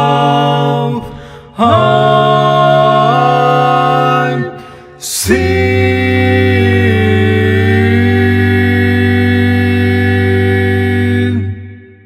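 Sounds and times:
male voices singing a chord: 0.0s - 12.0s.

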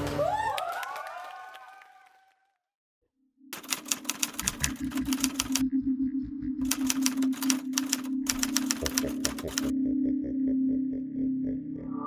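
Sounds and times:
rapid keyboard key clacks: 3.6s - 5.6s, 6.6s - 9.7s.

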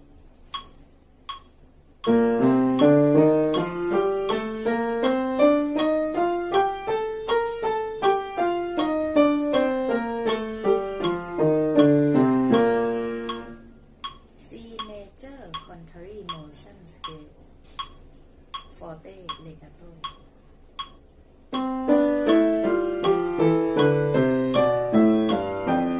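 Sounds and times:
piano playing a scale: 2.0s - 13.8s, 21.5s - 25.9s.

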